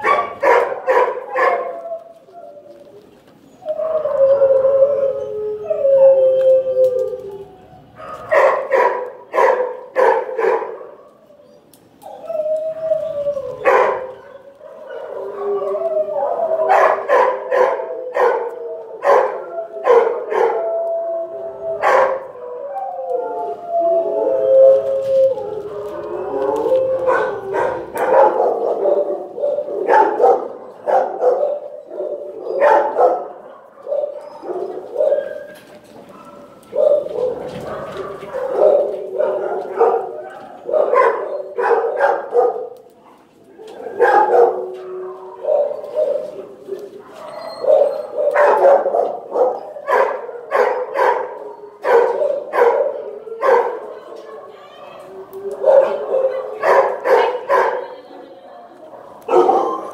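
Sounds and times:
dogs barking: 0.0s - 2.0s, 7.9s - 11.4s, 13.3s - 20.8s, 21.8s - 22.7s, 24.8s - 54.5s, 55.5s - 57.9s, 58.6s - 59.9s
dogs howling: 0.0s - 59.9s.

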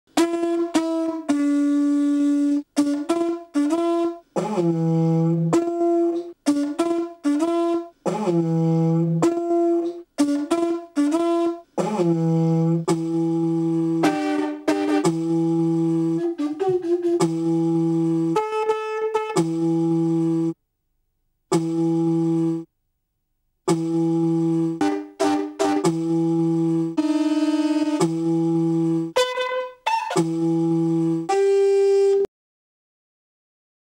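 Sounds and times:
conch shell horn notes: 0.1s - 20.6s, 21.5s - 22.7s, 23.7s - 32.3s.

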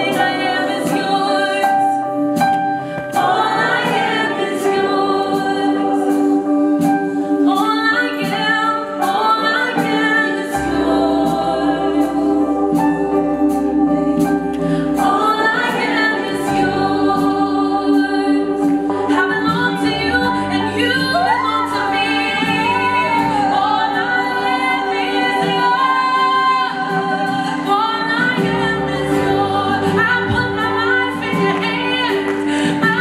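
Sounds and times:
woman singing: 0.0s - 2.4s, 3.2s - 33.0s
band playing: 0.0s - 33.0s.

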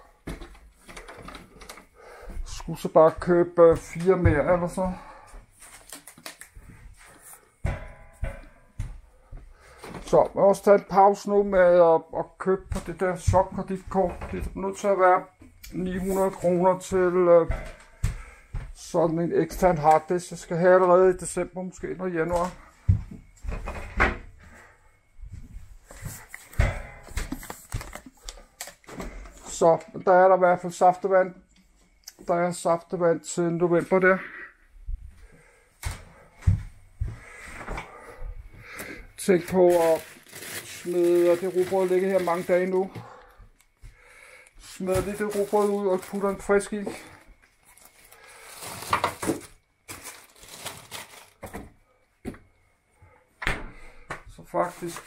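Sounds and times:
food packages rustling and knocking: 0.0s - 20.6s, 21.2s - 29.7s, 35.3s - 52.6s
plastic bottles knocking and clattering: 25.9s - 29.5s, 38.7s - 43.1s, 44.6s - 52.5s.

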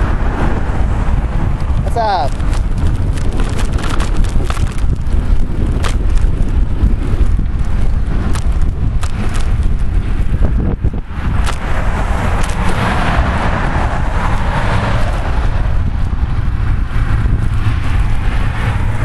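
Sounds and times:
passing cars tyre noise: 0.0s - 19.0s
wind rumbling on microphone: 0.0s - 19.0s.

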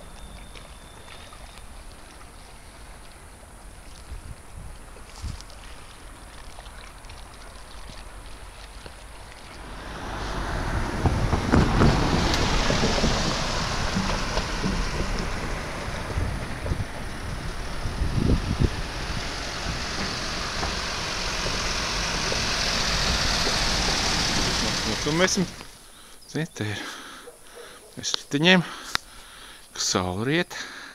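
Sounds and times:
car driving over wooden bridge deck: 9.5s - 25.8s
wind on microphone: 9.6s - 21.9s.

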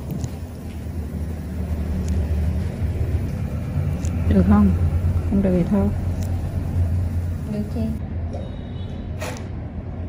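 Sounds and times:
low steady rumble: 0.0s - 8.0s.

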